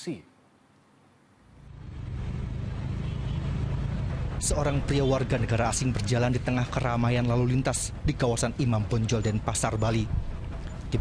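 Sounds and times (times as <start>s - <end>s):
road traffic rumble: 1.4s - 11.0s.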